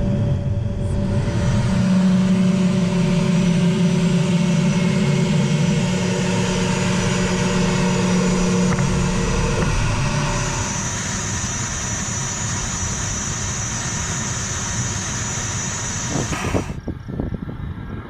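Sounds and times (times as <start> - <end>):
jet engines whining and rumbling: 0.0 - 18.0.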